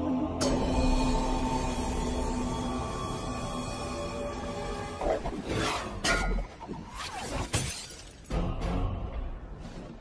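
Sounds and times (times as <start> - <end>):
dramatic orchestral film music: 0.0 - 6.5.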